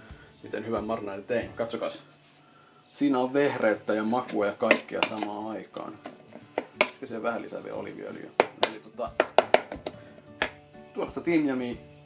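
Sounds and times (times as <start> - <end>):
metal spoon scraping plastic bowl: 3.9 - 7.0
spoon tapping bowl: 4.6 - 5.3, 8.4 - 10.6.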